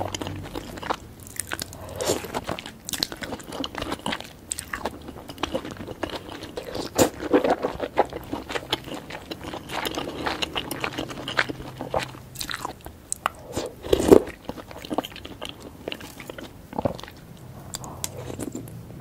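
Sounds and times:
wet chewing: 0.0s - 18.8s.

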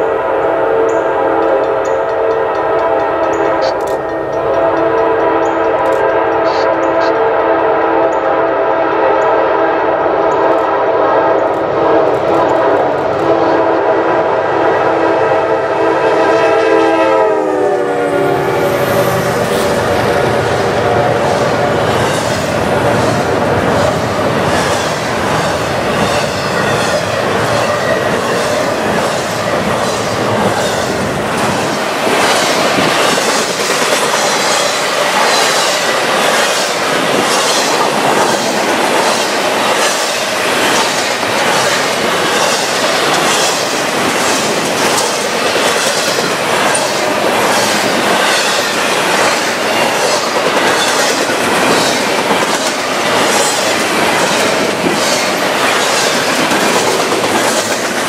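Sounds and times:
freight train wheels on rail: 0.0s - 58.0s
wheels clacking over rail joints: 0.9s - 7.0s, 20.4s - 58.0s.

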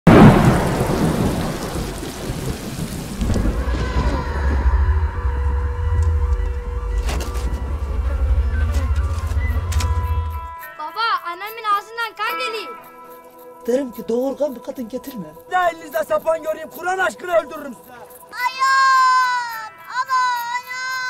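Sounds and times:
rain: 0.1s - 10.0s
loud thunderclap: 0.1s - 10.3s
dramatic score drone: 3.4s - 10.7s
sharp musical hit: 4.8s - 10.8s.

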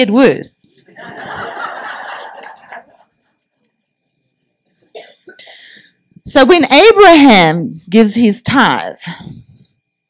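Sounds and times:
breathy hiss: 4.7s - 6.2s.

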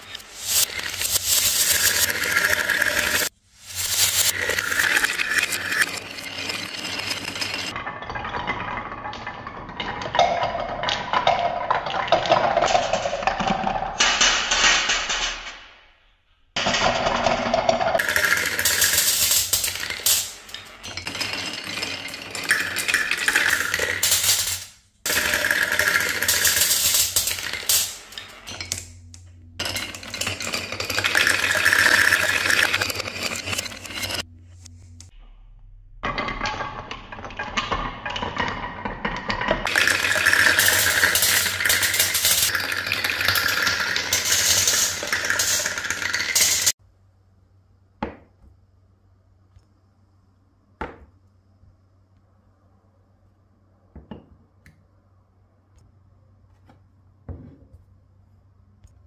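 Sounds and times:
glass marbles clattering on wood: 0.0s - 15.5s, 16.6s - 34.3s, 36.1s - 46.8s
marbles dropping into metal tin: 0.0s - 15.6s, 16.6s - 34.3s, 36.0s - 46.8s.

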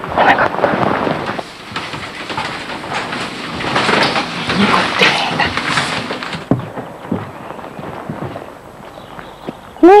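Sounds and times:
knocks on wooden floor: 5.7s - 7.4s.

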